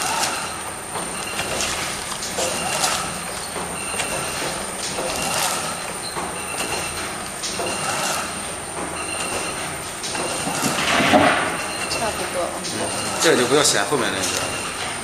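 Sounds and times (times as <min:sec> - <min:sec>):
bag-making machine clacking: 0:00.0 - 0:15.0.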